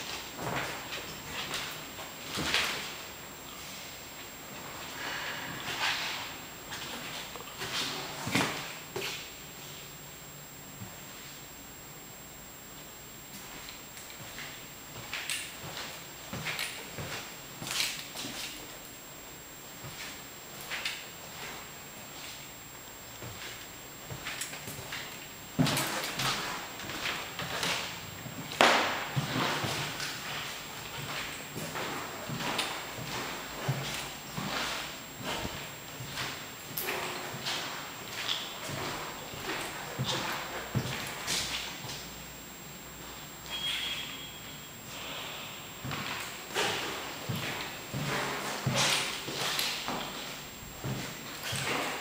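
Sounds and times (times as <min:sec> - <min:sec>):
footsteps on hard floor: 0:00.0 - 0:09.3, 0:13.4 - 0:18.7, 0:19.8 - 0:22.5, 0:23.1 - 0:42.1, 0:45.8 - 0:52.0.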